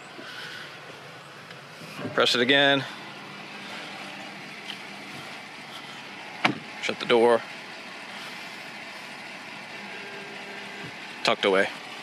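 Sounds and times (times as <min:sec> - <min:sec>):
electric motor humming: 0:08.2 - 0:11.2.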